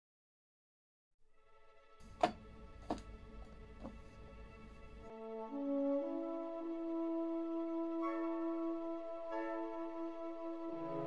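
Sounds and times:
classical music: 1.3s - 11.0s.

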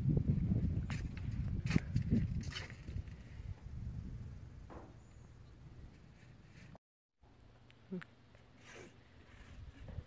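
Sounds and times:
wind rumbling on microphone: 0.0s - 6.0s, 9.3s - 10.0s.

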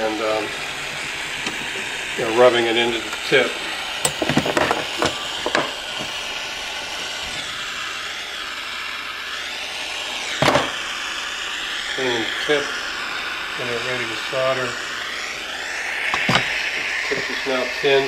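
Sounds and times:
torch flame hissing: 0.0s - 18.0s
soldering copper scraping and clicking: 0.9s - 1.8s, 4.0s - 6.2s.

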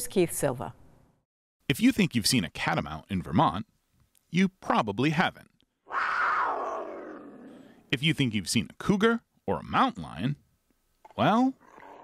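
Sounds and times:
cougar cry: 5.9s - 7.8s, 11.5s - 12.0s.

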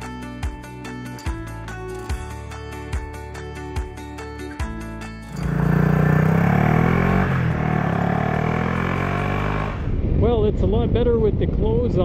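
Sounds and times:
music: 0.0s - 7.8s
motorcycle engine accelerating: 5.2s - 10.1s.

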